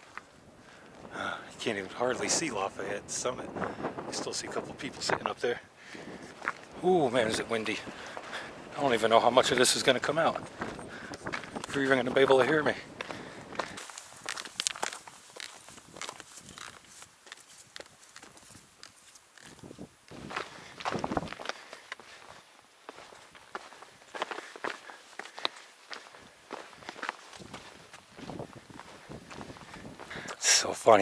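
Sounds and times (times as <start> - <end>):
boots stepping on gravel: 6.0 - 30.4.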